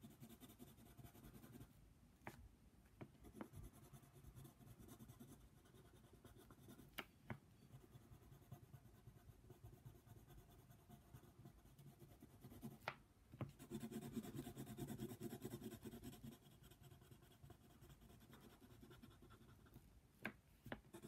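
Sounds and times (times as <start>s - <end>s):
pencil scratching on paper: 0.0s - 1.7s, 3.2s - 6.9s, 7.7s - 12.8s, 13.6s - 19.8s.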